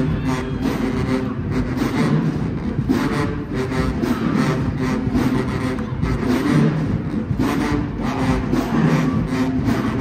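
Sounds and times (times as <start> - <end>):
low brass sustained notes: 0.0 - 10.0
marching band playing: 0.0 - 10.0.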